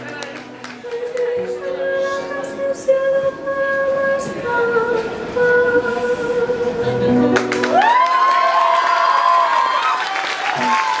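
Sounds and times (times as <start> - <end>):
audience applauding: 0.0 - 1.2, 7.3 - 11.0
cheering whoop: 7.6 - 11.0.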